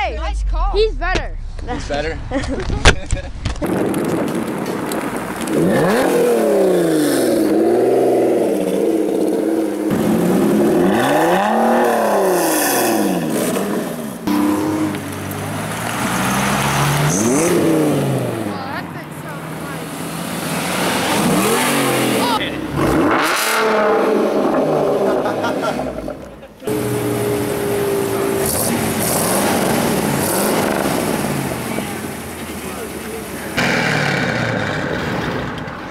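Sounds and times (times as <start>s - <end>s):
sports car engines revving: 3.6s - 35.9s.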